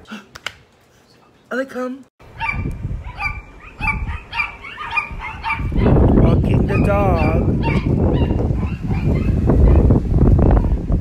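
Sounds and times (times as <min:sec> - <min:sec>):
wind buffeting microphone: 0:02.2 - 0:11.0
dog whining and yipping: 0:02.4 - 0:05.9.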